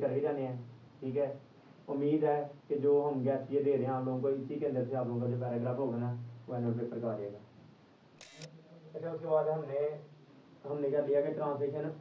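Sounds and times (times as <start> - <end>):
sharp click-like burst: 8.2 - 8.5.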